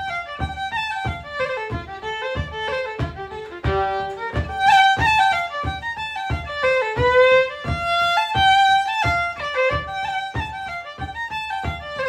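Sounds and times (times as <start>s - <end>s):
solo fiddle melody: 0.0s - 12.0s.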